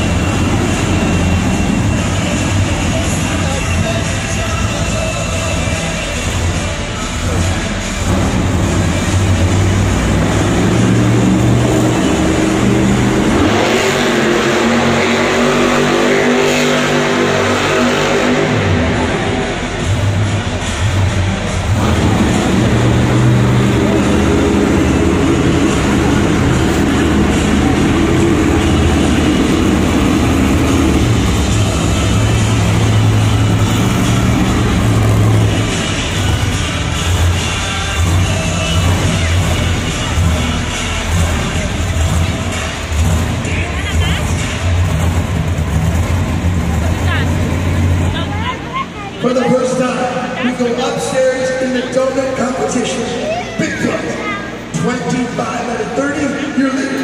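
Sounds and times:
arena music: 0:00.0 - 0:57.0
truck engine revving: 0:00.0 - 0:57.0.

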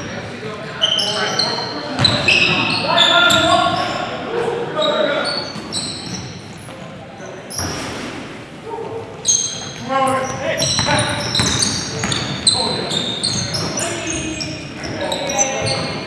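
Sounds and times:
sneakers squeaking: 0:00.0 - 0:16.0
basketball bouncing on wooden floor: 0:10.6 - 0:12.4.

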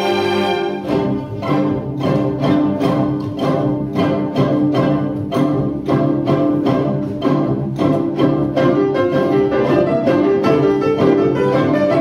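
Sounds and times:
string orchestra playing: 0:00.0 - 0:12.0.

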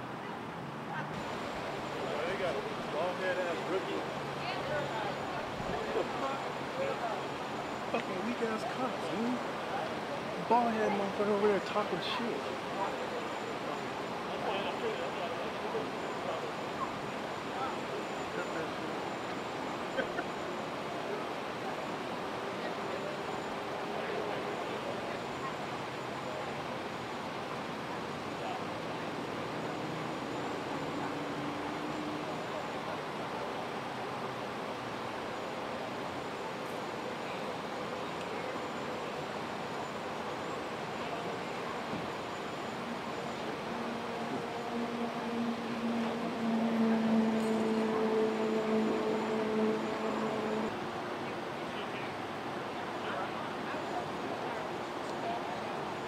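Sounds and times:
outdoor street noise: 0:00.0 - 0:56.0
vehicle engine humming: 0:39.1 - 0:51.2.

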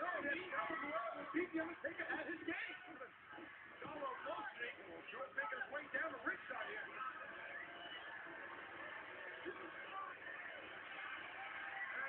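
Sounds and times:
arena crowd din: 0:00.0 - 0:12.0.

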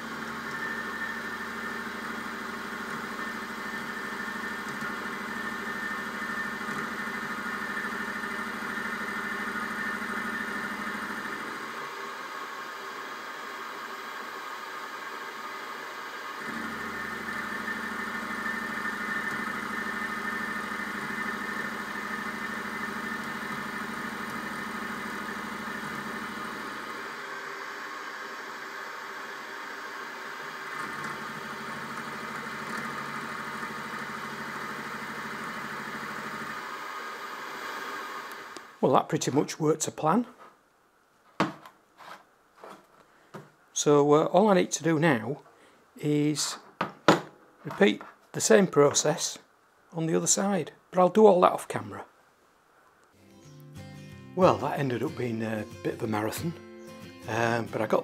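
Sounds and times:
end mill cutting metal: 0:00.0 - 0:12.7, 0:15.7 - 0:38.7
milling machine motor hum and whine: 0:00.0 - 0:38.8.

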